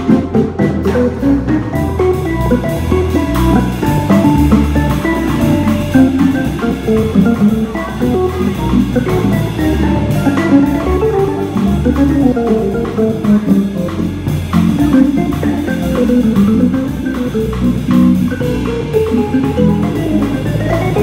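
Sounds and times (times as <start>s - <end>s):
drums and cymbals: 0.0s - 21.0s
electric guitar: 0.0s - 21.0s
organ pedal bass notes: 0.0s - 21.0s
organ solo line: 0.0s - 21.0s.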